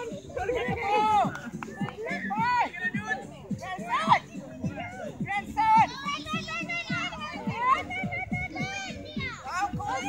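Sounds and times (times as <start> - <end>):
children shouting and squealing: 0.0 - 10.0
music with steady beat: 0.0 - 10.0.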